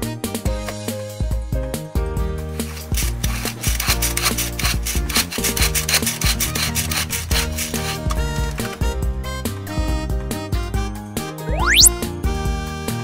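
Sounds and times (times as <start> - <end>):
cheerful background music: 11.5 - 11.9.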